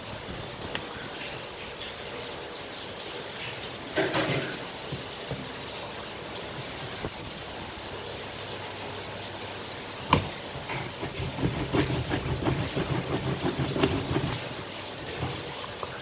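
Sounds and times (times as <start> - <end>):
creaking and rubbing of juicer: 10.1 - 16.0.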